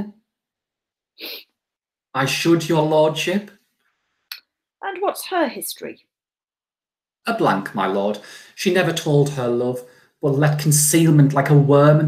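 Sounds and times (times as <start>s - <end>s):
person speaking: 2.2s - 3.5s, 4.8s - 5.9s, 7.3s - 12.0s
sharp breath through nose: 8.2s - 8.6s.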